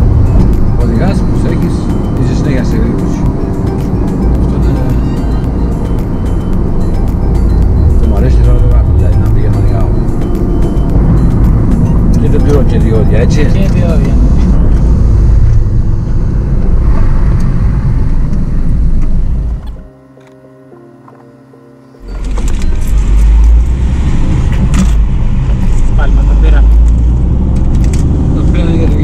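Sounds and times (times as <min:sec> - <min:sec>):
car road and engine rumble: 0:00.0 - 0:29.0.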